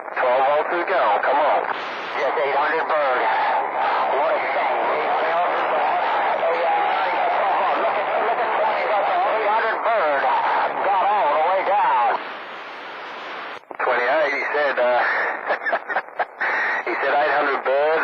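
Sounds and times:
radio static: 0.0s - 18.0s
voices over radio speaker: 0.0s - 18.0s.

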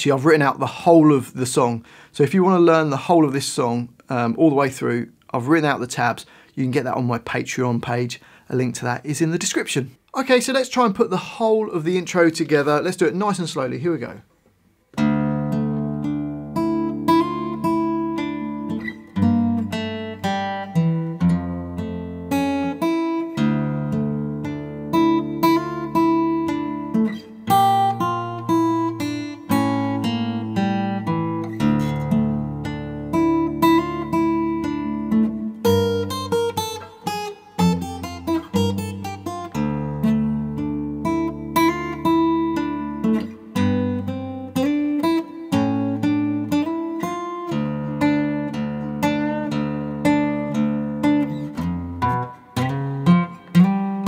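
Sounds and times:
fingerpicked acoustic guitar: 14.9s - 54.0s.

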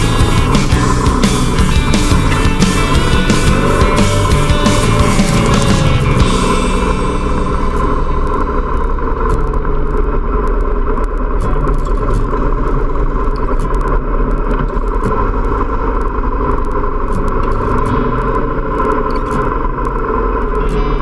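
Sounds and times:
motorcycle engines running: 0.0s - 21.0s
road and wind noise: 0.0s - 21.0s.

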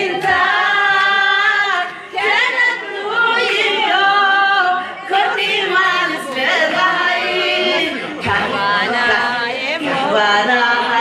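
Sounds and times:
group singing without instruments: 0.0s - 11.0s.

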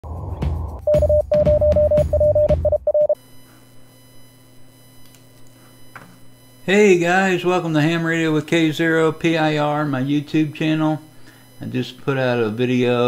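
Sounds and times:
faint steady hum: 2.9s - 13.0s.

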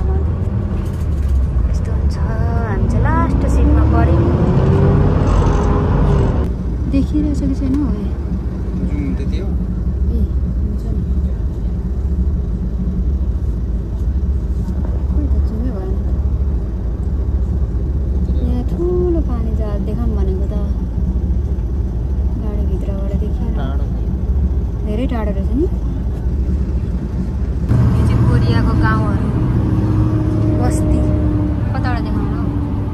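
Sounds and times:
bus engine and road rumble: 0.0s - 32.9s.

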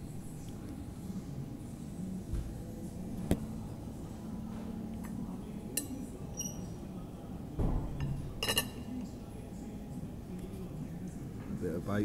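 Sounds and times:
cutlery clinking on china plate: 8.0s - 9.0s.

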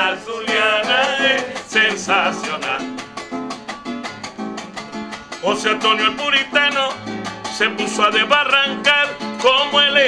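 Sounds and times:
strummed cuatro chords: 0.0s - 10.0s.

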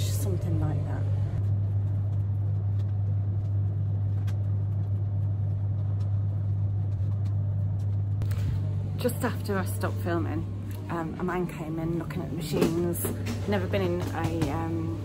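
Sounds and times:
dryer whirr: 0.0s - 15.0s
tumble dryers humming: 0.0s - 15.0s.

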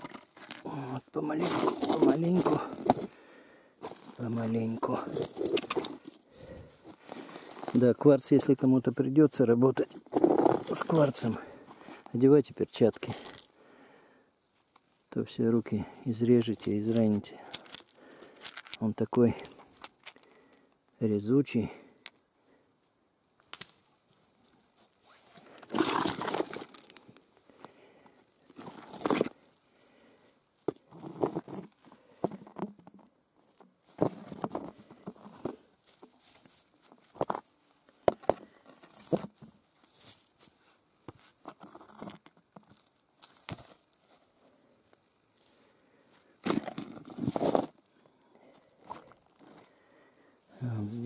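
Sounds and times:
rocks scraping and crunching: 0.0s - 20.7s, 23.4s - 51.0s.

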